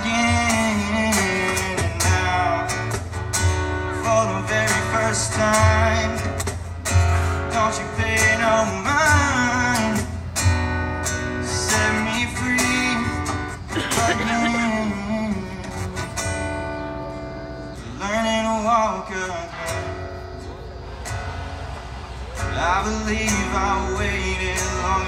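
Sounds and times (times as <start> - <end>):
acoustic guitar strumming: 0.0 - 25.0
cajon beat: 0.2 - 3.8, 5.4 - 7.3, 13.2 - 14.6.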